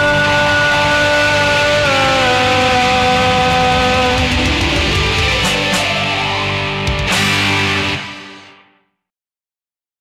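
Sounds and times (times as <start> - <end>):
distorted electric guitar note: 0.0 - 8.9.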